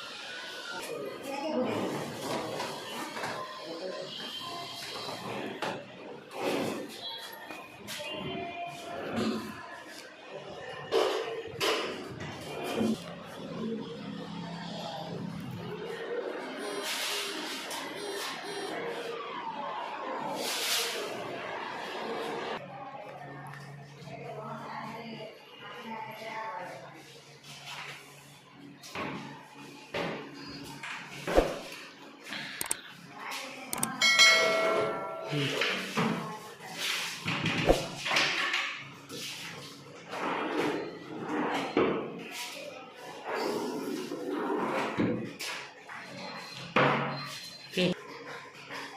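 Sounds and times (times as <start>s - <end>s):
indistinct voices: 32.3s - 37.0s
brief ringing tone: 33.8s - 35.6s.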